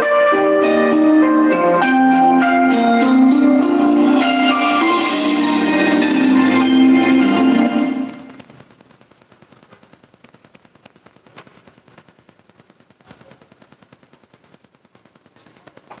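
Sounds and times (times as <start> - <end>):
backing music: 0.0 - 8.4
faint irregular clicking and crackling: 8.1 - 16.0.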